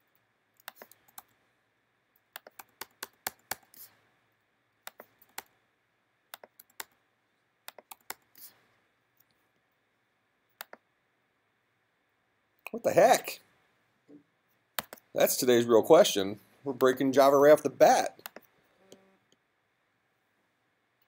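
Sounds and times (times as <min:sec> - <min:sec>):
typing on computer keyboard: 0:02.3 - 0:03.7, 0:07.7 - 0:08.3.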